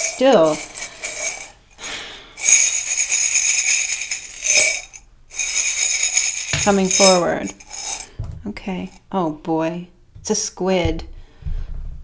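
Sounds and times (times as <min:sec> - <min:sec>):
metallic jingling and clinking: 0:00.0 - 0:01.6, 0:02.4 - 0:09.1.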